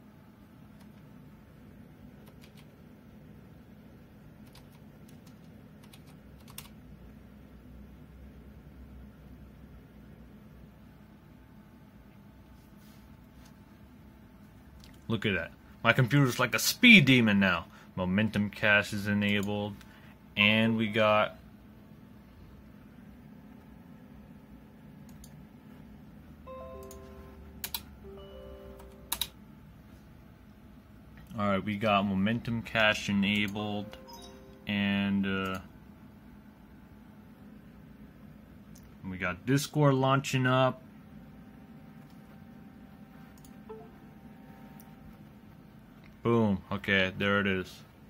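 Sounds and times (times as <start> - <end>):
steady low hum: 0.0 - 48.0
keyboard keys clicking: 2.2 - 2.7, 4.4 - 6.8, 26.6 - 27.9, 28.7 - 29.4
faint electronic tones: 26.5 - 29.3, 43.2 - 45.1.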